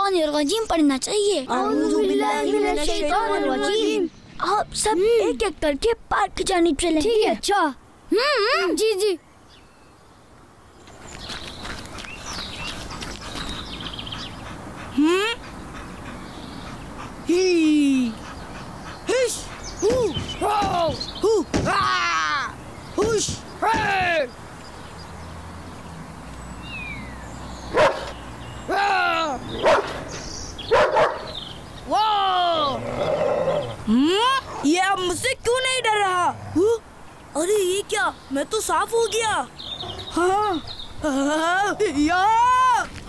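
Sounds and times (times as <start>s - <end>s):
birds chirping: 0.0s - 43.0s
loud rising cry: 31.9s - 34.0s.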